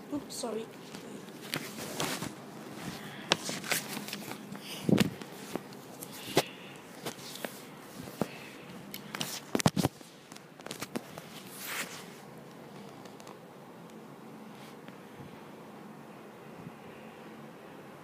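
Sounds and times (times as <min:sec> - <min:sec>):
book pages turning: 0:00.7 - 0:13.4
paper rustling: 0:00.8 - 0:13.4.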